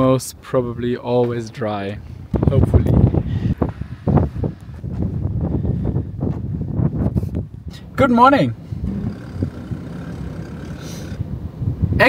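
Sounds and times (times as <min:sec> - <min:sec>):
wind buffeting microphone: 0:02.0 - 0:12.0.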